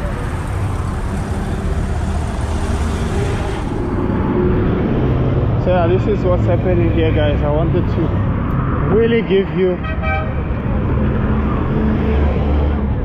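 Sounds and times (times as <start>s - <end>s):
road traffic passing: 0.0s - 13.0s.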